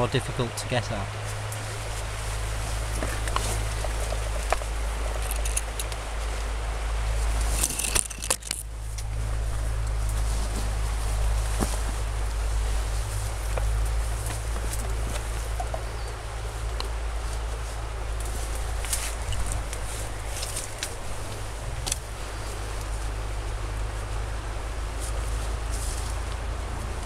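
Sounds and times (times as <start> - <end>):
leaves and branches swishing: 0.0 - 27.0
steady low rumble: 0.0 - 27.0
footsteps in undergrowth: 1.1 - 27.0
twigs cracking: 1.2 - 6.5, 7.2 - 24.3.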